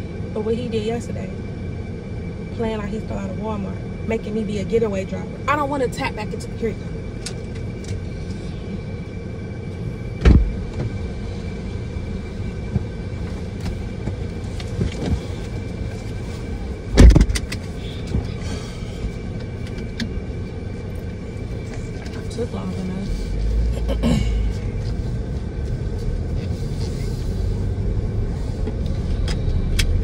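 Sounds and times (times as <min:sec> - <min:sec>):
car engine hum inside cabin: 0:00.0 - 0:30.0
car door shutting: 0:10.2 - 0:11.0, 0:16.9 - 0:18.3.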